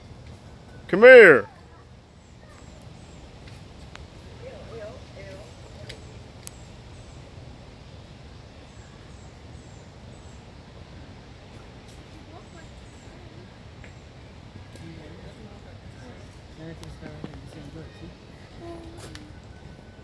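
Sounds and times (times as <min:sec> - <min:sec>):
distant people talking: 0:00.7 - 0:03.4, 0:04.0 - 0:07.3, 0:11.8 - 0:20.0.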